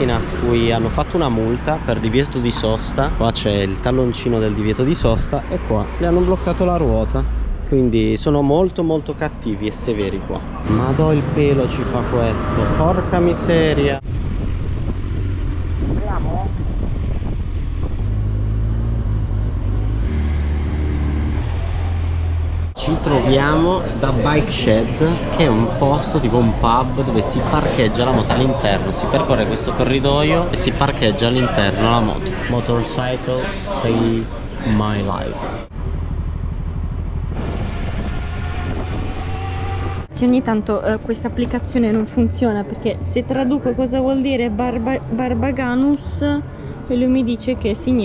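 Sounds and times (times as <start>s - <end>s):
road noise: 0.0s - 48.0s
wind noise on microphone: 13.7s - 19.6s, 36.6s - 42.2s.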